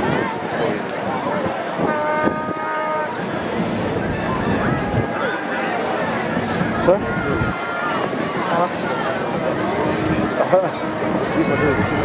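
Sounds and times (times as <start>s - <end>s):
people talking: 0.0s - 12.0s
vehicle horn honking: 1.8s - 3.4s, 4.1s - 7.6s.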